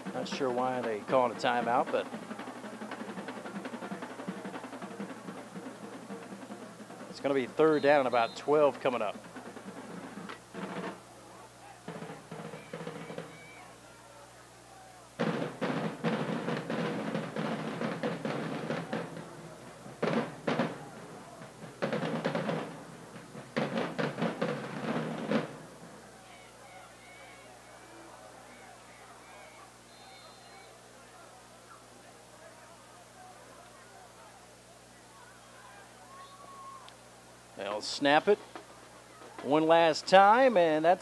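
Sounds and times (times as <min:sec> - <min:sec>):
rapid drum runs: 0:00.0 - 0:13.8, 0:15.1 - 0:30.4, 0:37.5 - 0:41.0
low steady background noise: 0:00.0 - 0:41.0.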